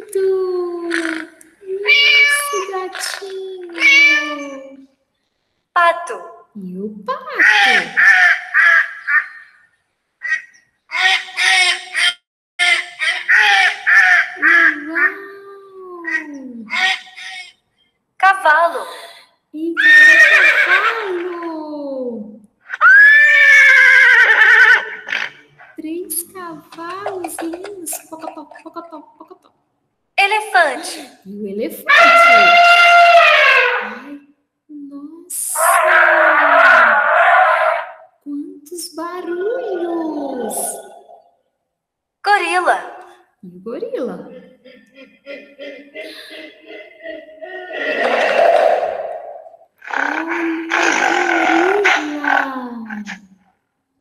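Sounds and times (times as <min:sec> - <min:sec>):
elephant trumpeting: 0:11.0 - 0:14.8, 0:22.7 - 0:25.7, 0:31.9 - 0:34.1, 0:35.6 - 0:38.0, 0:47.4 - 0:53.2
horse whinnying: 0:19.8 - 0:21.2, 0:22.7 - 0:25.4, 0:31.9 - 0:34.0, 0:47.4 - 0:52.0
ducks quacking: 0:26.7 - 0:29.0.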